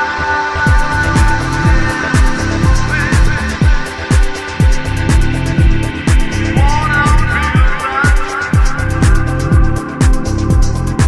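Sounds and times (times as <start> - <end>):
wavering gliding melody: 0.0 - 10.9
house music kick drum: 0.1 - 11.0
hi-hats: 0.6 - 11.0.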